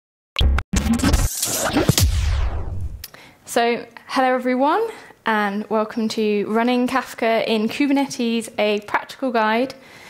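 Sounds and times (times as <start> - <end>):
deep bass: 0.4 - 3.0
electronic music sting: 0.4 - 3.0
record-scratch effects: 0.4 - 3.0.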